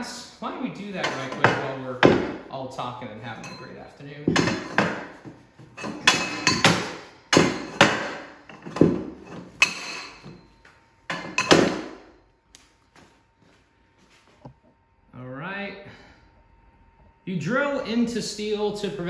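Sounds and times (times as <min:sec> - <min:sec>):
steel tubes clanking: 0:03.3 - 0:10.5.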